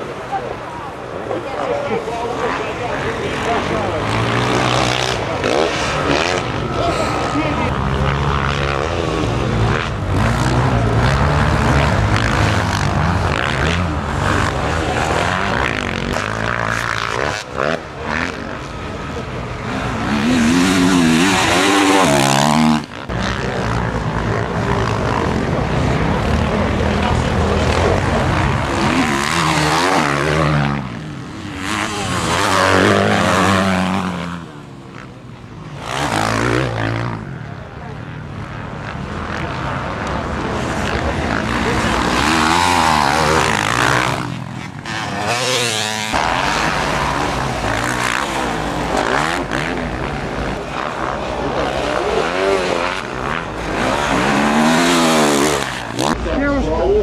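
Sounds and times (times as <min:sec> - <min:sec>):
dirt bike engines revving: 0:00.0 - 0:57.0.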